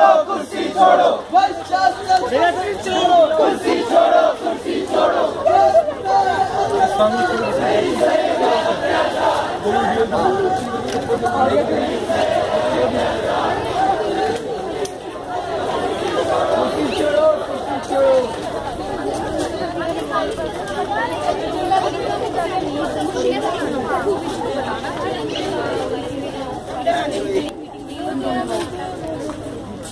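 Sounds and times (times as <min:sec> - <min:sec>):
crowd chattering: 0:00.0 - 0:29.9.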